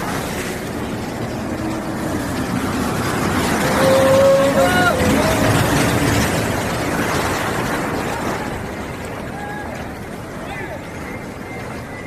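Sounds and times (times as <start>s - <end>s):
bus engine passing: 0.0s - 12.0s.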